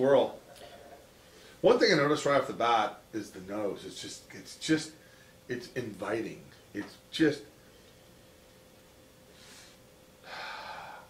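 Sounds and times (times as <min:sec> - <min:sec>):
person inhaling: 0:09.3 - 0:11.0.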